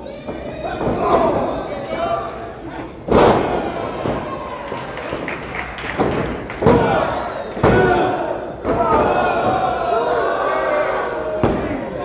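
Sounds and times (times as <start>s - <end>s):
crowd shouting: 0.0s - 5.3s, 6.6s - 12.0s.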